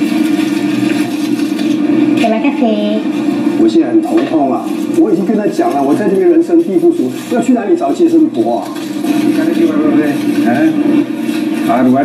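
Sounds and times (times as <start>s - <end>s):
dialogue from television: 0.0s - 12.0s
low drone from television speakers: 0.0s - 12.0s.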